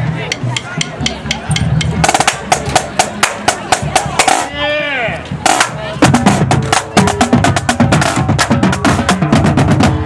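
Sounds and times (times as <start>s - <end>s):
marching snare and tenor drums: 0.2s - 4.6s, 5.3s - 10.0s.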